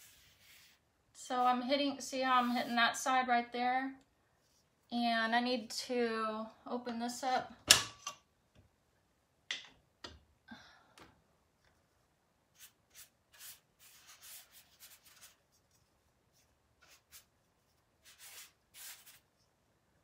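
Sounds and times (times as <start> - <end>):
paintbrush stroking on wood: 0.0 - 0.8, 12.6 - 15.8, 16.4 - 19.2.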